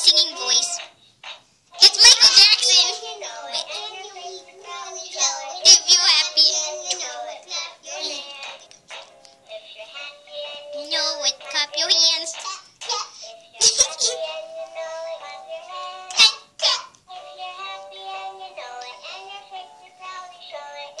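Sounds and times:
children singing: 0:01.8 - 0:08.5.

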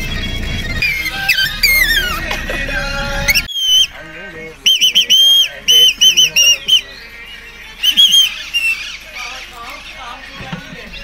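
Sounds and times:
shrill whistle notes: 0:00.0 - 0:02.3, 0:02.9 - 0:04.0, 0:04.6 - 0:07.0, 0:07.8 - 0:09.0.

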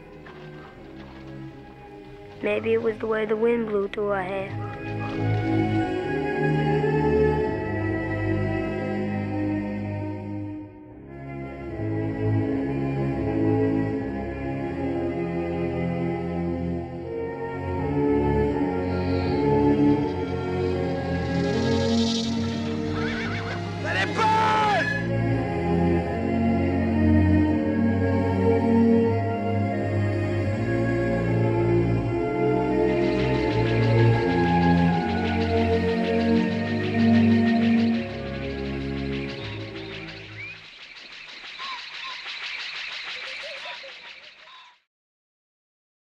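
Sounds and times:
film score drone: 0:00.0 - 0:44.2
insects trilling: 0:18.9 - 0:23.9, 0:32.9 - 0:44.6
horse whinnying: 0:22.8 - 0:24.9
short bird chirps: 0:37.6 - 0:44.8.

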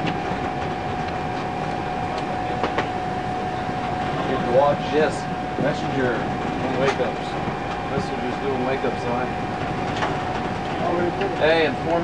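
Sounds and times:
constant high hum: 0:00.0 - 0:12.0
machinery rumble and hiss: 0:00.0 - 0:12.0.

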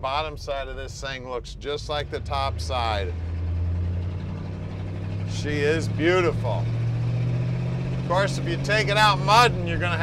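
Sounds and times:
car engine drone from inside cab: 0:00.0 - 0:10.0.

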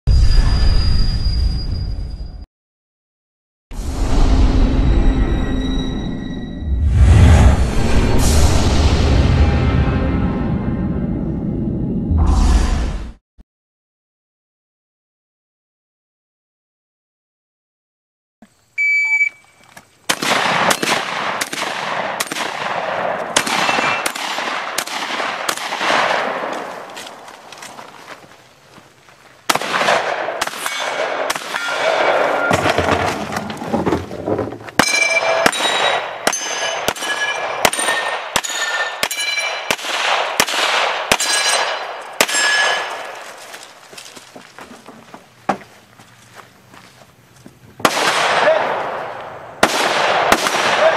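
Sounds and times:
shot timer beep: 0:18.8 - 0:19.4
steel targets clanging: 0:34.8 - 0:39.7, 0:41.1 - 0:43.2
rapid gunshots: 0:35.3 - 0:42.9.

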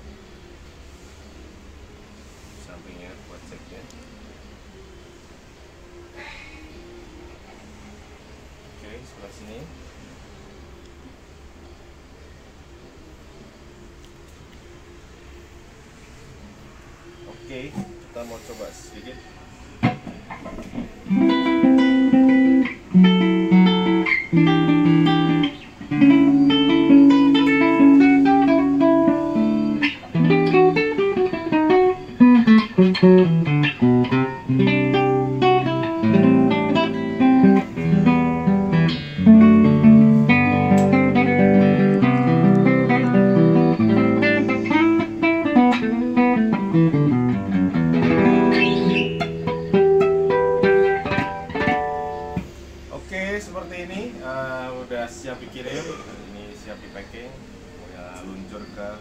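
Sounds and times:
fingerstyle classical guitar: 0:20.7 - 0:52.5.

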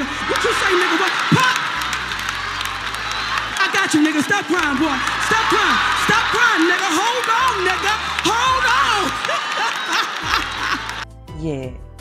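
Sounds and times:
comedian talking: 0:00.0 - 0:01.8, 0:03.6 - 0:09.5
audience laughing and applauding: 0:00.0 - 0:11.1.

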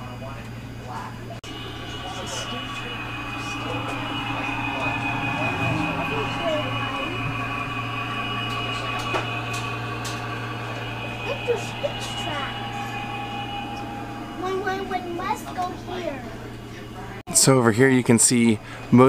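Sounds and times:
model train running on track: 0:01.5 - 0:17.1.

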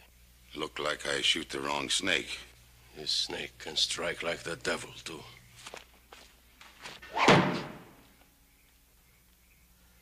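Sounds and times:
loud sudden thud: 0:07.1 - 0:08.0.

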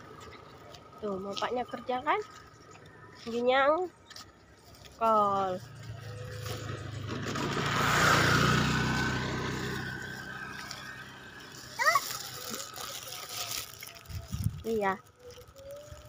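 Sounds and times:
vehicle passing: 0:05.1 - 0:13.8.

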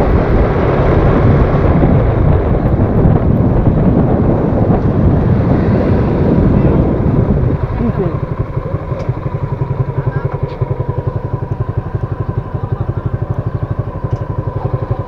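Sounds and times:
motorcycle engine idling: 0:00.0 - 0:15.0
wind rush: 0:00.0 - 0:15.0.

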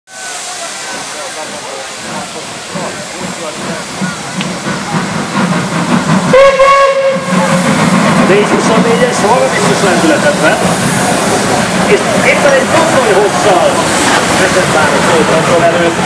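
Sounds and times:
steam locomotive hissing: 0:00.1 - 0:16.0
steam whistle blast: 0:06.3 - 0:07.4.

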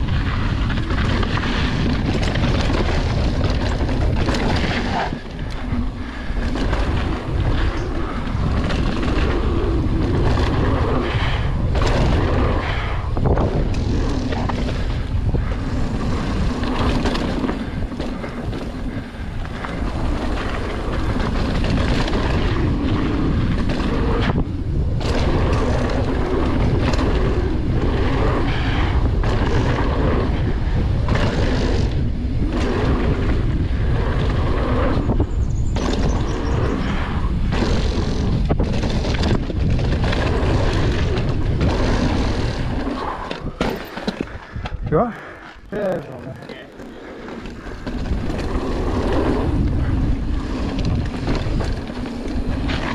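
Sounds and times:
bike rattling and knocking: 0:00.0 - 0:52.9
bike tyres rolling on dirt: 0:00.0 - 0:52.9
wind rushing over microphone: 0:00.0 - 0:52.9.

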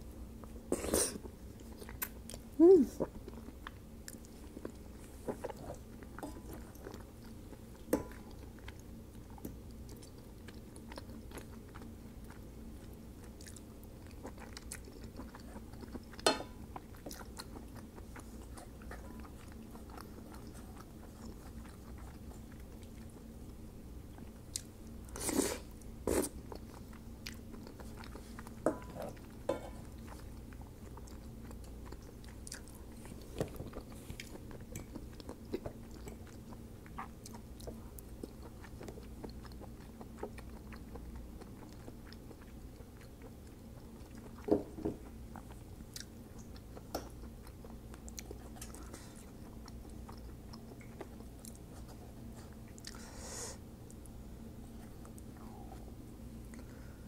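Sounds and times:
chewing soft pasta: 0:00.0 - 0:57.0.

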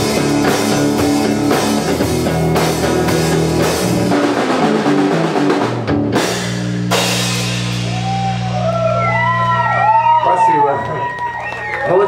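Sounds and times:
low amplifier hum: 0:05.7 - 0:11.4
electric guitar feedback: 0:06.7 - 0:11.6.

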